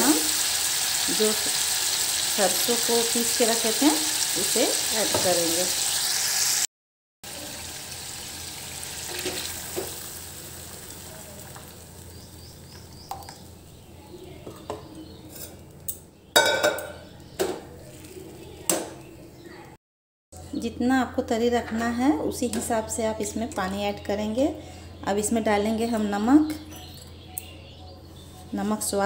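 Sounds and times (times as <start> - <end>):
food sizzling in pan: 0.0 - 6.7, 7.3 - 13.9
metal ladle clanking on pan: 16.4 - 17.6.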